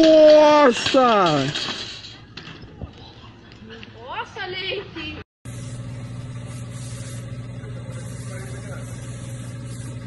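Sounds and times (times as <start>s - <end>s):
low mechanical motor hum: 5.5s - 10.0s.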